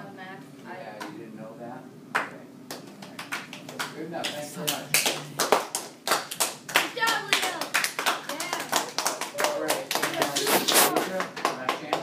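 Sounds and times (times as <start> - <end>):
hands clapping: 2.1 - 12.0.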